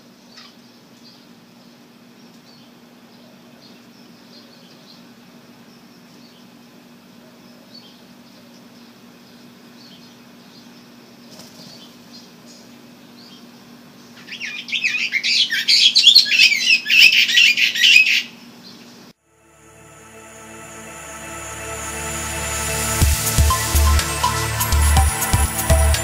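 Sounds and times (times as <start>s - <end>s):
small birds chirping: 0.2s - 19.0s.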